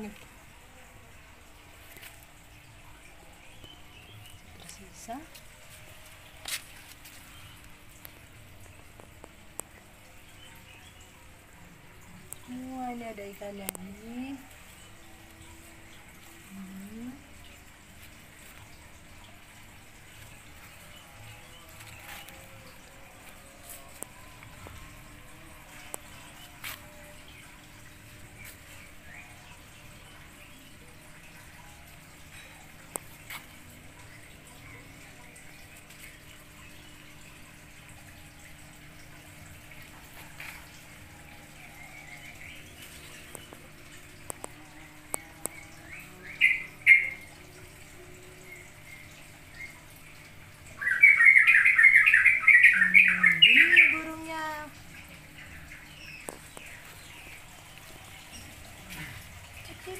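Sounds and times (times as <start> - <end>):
birds chirping: 48.4 - 59.9.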